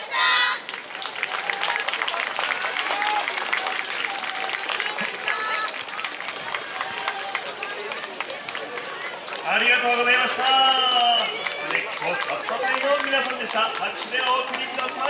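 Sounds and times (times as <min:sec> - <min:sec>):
audience clapping: 0:00.6 - 0:15.0.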